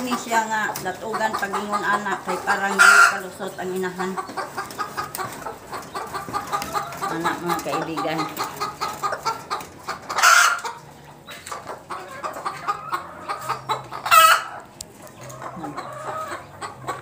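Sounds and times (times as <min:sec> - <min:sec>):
loud chicken calls: 0:00.0 - 0:03.3, 0:03.9 - 0:17.0
chickens clucking: 0:00.0 - 0:17.0.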